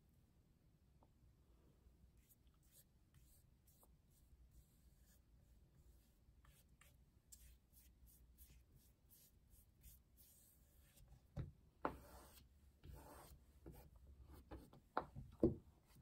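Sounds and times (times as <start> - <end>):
paintbrush strokes on canvas: 2.2 - 11.3, 11.9 - 14.7.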